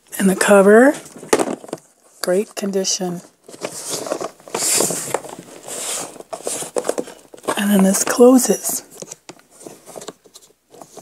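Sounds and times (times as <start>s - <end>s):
plastic container rubbing and scraping: 0.4s - 8.6s.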